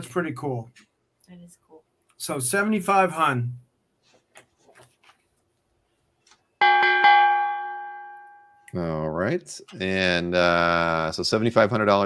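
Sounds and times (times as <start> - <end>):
boxing ring bell ringing: 6.6 - 8.7.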